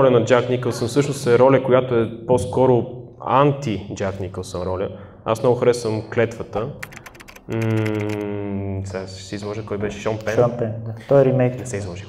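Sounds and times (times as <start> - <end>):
typewriter key clicks: 6.8 - 8.2.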